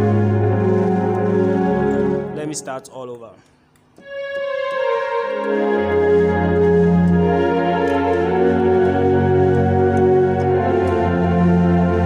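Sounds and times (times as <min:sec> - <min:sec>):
deep keyboard bass notes: 0:00.0 - 0:03.0, 0:04.0 - 0:12.0
keyboard sustained chords: 0:00.0 - 0:03.1, 0:04.0 - 0:12.0.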